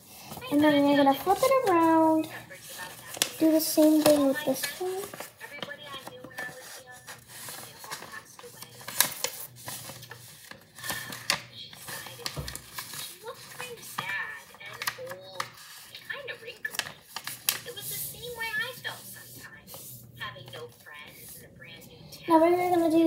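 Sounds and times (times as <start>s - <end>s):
paper rustling and sliding: 0.0s - 21.5s
sharp taps and crackles of paper: 0.1s - 19.9s.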